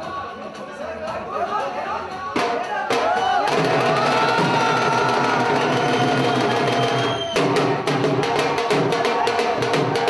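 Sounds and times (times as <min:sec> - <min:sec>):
dhol drumming: 0:01.0 - 0:10.0.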